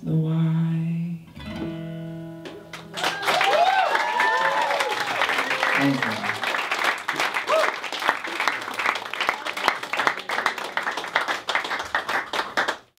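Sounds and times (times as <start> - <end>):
audience applause: 2.7 - 13.0
person cheering: 3.0 - 6.5, 7.4 - 8.5.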